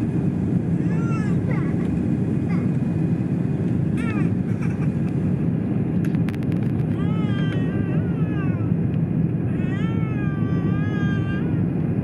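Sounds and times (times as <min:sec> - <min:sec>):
airliner cabin rumble: 0:00.0 - 0:12.0
young child whining cries: 0:00.8 - 0:01.9, 0:06.9 - 0:08.8, 0:09.5 - 0:11.7.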